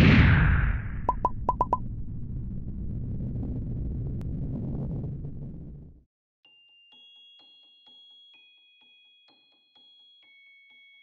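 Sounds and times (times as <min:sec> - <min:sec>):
rocket engine rumble: 0:00.6 - 0:06.0.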